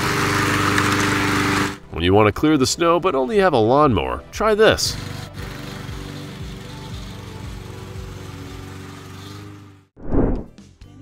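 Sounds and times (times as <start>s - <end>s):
lawn mower engine running: 0.0s - 2.1s, 4.8s - 9.9s.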